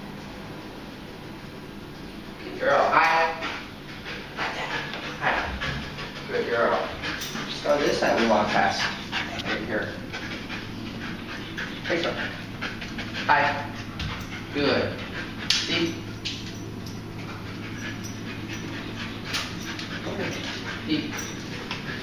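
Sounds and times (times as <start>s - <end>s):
dog panting and sniffing: 2.6s - 22.0s.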